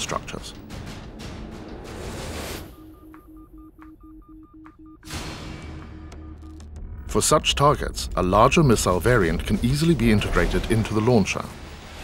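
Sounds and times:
rapid two-tone electronic bleeps: 0:02.7 - 0:07.6.

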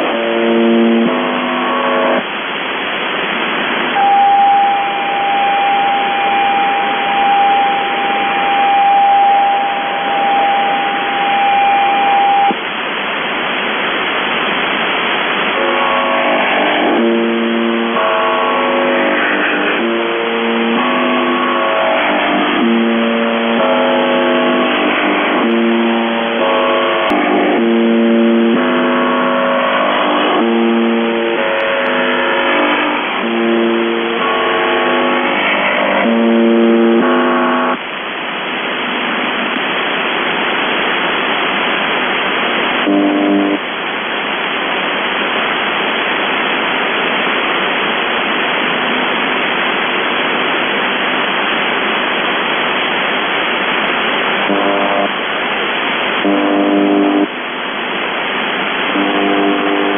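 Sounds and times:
radio test tone: 0:00.0 - 0:12.7, 0:13.4 - 0:43.8, 0:47.2 - 0:59.9
multi-tone radio signal: 0:00.0 - 0:59.9
radio static hiss: 0:00.0 - 0:59.9.

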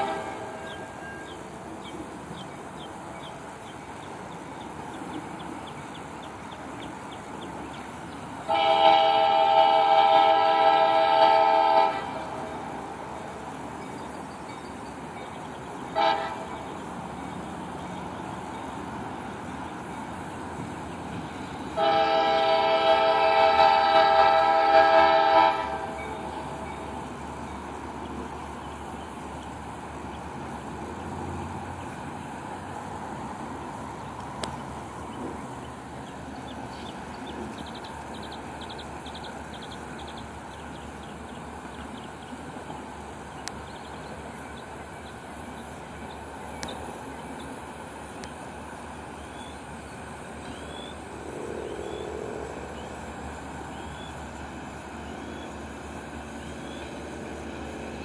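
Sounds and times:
locomotive air horn blasts: 0:00.0 - 0:01.2, 0:08.5 - 0:12.8, 0:15.9 - 0:16.7, 0:21.7 - 0:26.7
low train running: 0:00.0 - 0:58.0.

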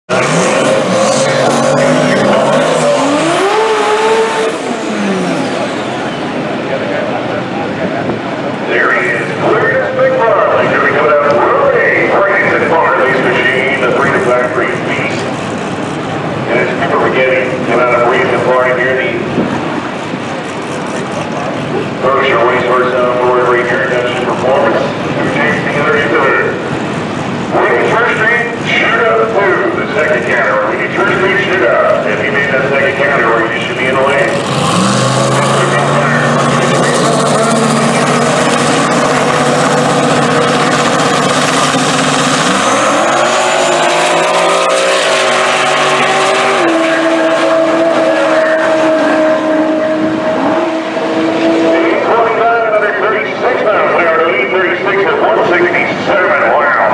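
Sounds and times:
crowd noise: 0:00.0 - 0:56.9
drag racing engines revving: 0:00.0 - 0:56.9
voices: 0:05.4 - 0:15.3, 0:27.5 - 0:39.4, 0:51.7 - 0:56.9.

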